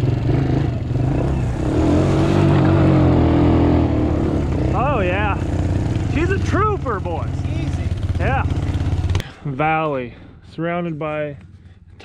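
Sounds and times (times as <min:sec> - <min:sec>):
quad engine revving: 0:00.0 - 0:09.3.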